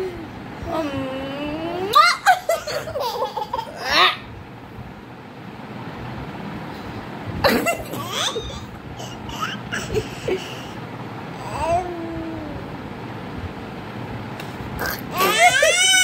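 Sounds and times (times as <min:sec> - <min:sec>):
woman and baby laughing: 0:01.9 - 0:04.2, 0:07.4 - 0:10.8, 0:15.0 - 0:16.0.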